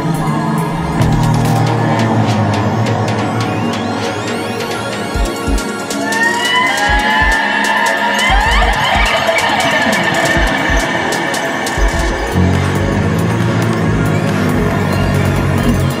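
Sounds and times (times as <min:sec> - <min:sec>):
backing track with drum beat: 0:01.0 - 0:16.0.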